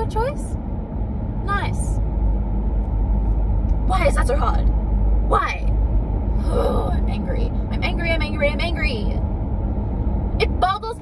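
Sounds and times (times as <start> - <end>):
woman speaking: 0.0 - 0.5, 1.5 - 2.0, 3.9 - 4.7, 5.3 - 5.7, 6.4 - 9.2, 10.4 - 11.0
car engine and tyres rumbling: 0.0 - 11.0.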